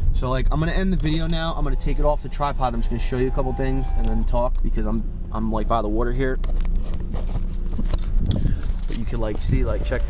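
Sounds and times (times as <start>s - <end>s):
low car cabin rumble: 0.0s - 10.0s.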